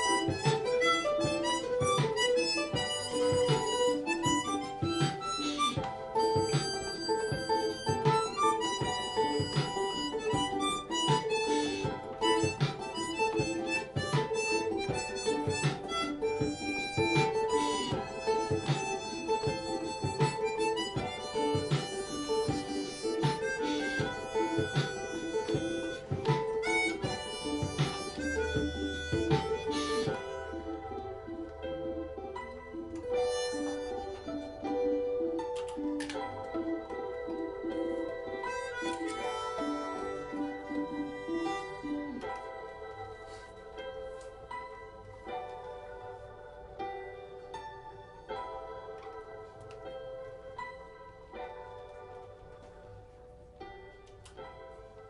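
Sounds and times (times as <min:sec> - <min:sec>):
harmonica: 0:00.0 - 0:55.0.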